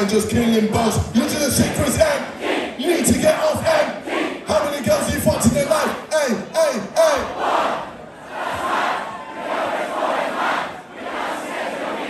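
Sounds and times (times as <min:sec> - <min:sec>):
concert crowd shouting and cheering: 0:01.2 - 0:12.0.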